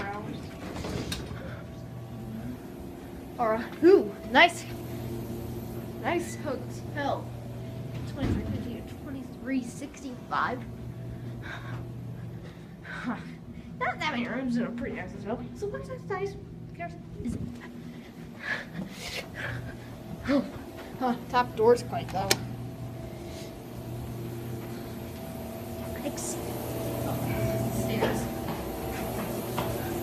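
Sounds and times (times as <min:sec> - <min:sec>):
low hum: 0:00.0 - 0:30.0.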